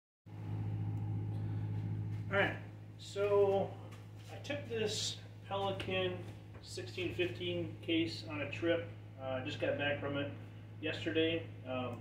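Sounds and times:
faint higher tones: 0.3s - 4.1s
steady low hum: 0.3s - 12.0s.

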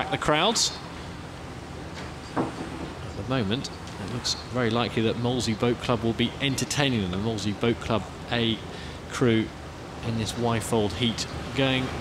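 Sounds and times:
outdoor race broadcast noise: 0.0s - 12.0s.

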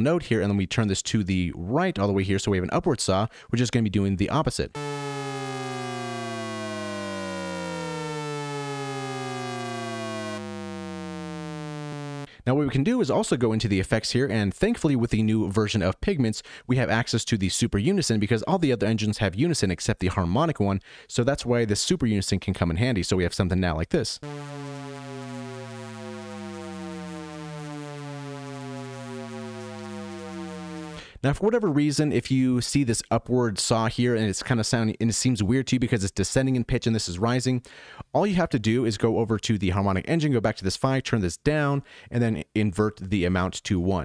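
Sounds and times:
synthesized falling shepard tone: 4.8s - 12.3s, 24.2s - 31.0s.

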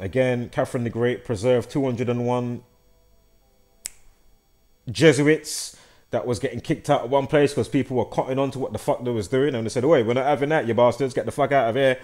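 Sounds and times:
faint steady tones: 0.0s - 12.0s
short sharp click: 3.8s - 4.1s.

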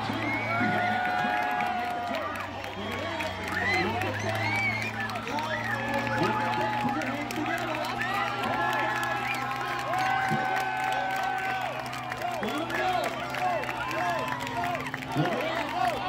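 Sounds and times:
crowd chattering and cheering: 0.0s - 16.0s.

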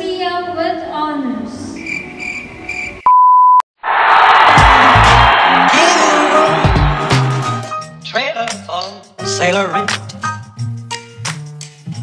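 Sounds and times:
pure steady beep: 2.8s - 3.6s
music with bass beat: 4.5s - 7.9s.

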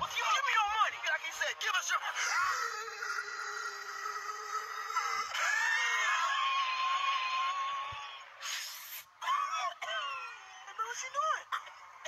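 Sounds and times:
short hiss: 8.4s - 9.1s.

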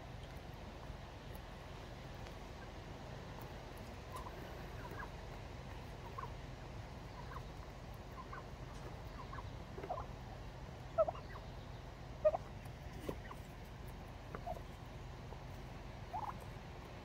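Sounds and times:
turkeys calling: 0.1s - 17.0s.

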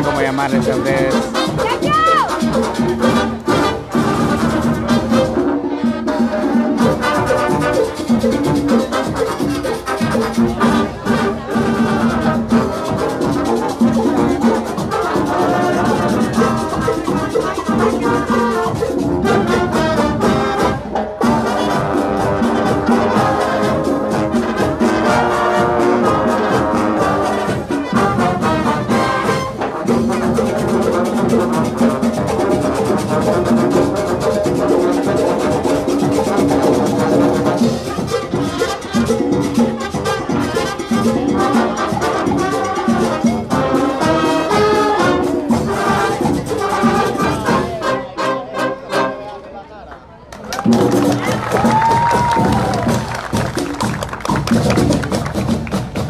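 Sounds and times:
steady drum beat: 0.0s - 47.8s, 50.6s - 56.0s
brass horns playing: 0.0s - 49.4s.

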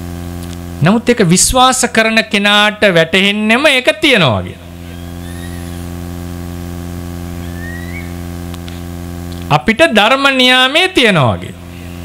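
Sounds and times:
low electrical hum: 0.0s - 12.0s
faint high chirps: 4.8s - 5.9s, 7.4s - 8.2s.

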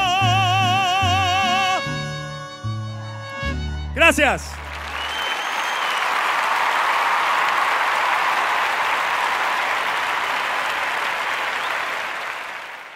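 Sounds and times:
audience applauding: 4.0s - 12.9s.

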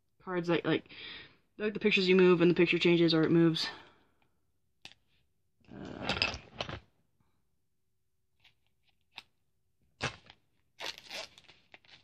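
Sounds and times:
packaging tearing: 10.0s - 12.0s
packaging rustling: 10.1s - 12.0s.

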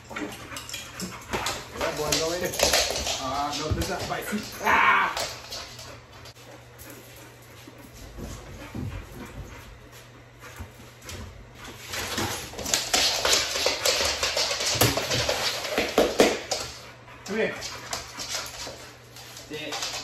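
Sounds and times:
dog claws skittering on wooden floor: 0.0s - 9.4s, 10.5s - 20.0s.

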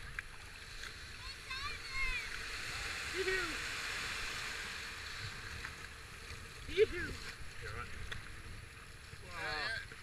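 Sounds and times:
white water rushing: 1.2s - 8.0s.

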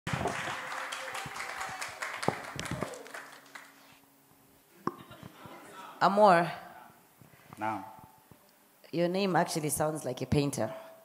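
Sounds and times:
audience applause: 0.0s - 3.9s.

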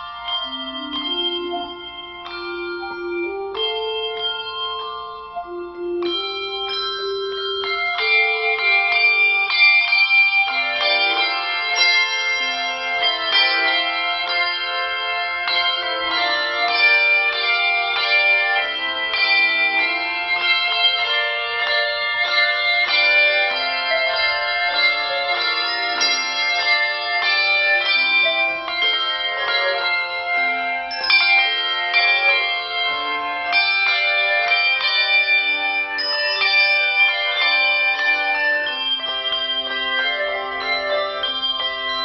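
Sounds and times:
handbell choir playing: 0.0s - 42.0s.

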